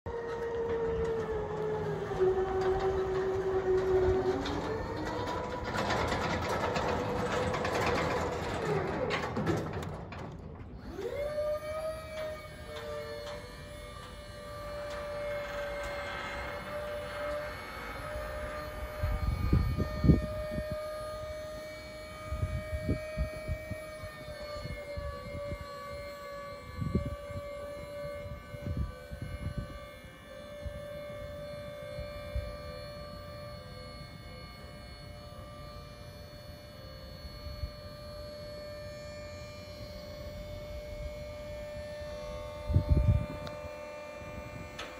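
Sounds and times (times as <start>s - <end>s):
hydraulic pump motor whining: 0.1s - 44.9s.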